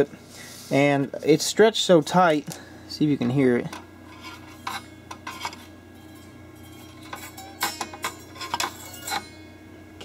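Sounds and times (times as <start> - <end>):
wire plucked metallic ping: 5.9 - 9.8.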